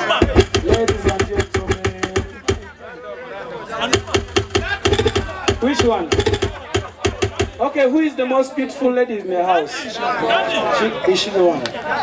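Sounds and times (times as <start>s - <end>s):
sharp percussive hits: 0.2s - 2.8s, 3.9s - 7.7s.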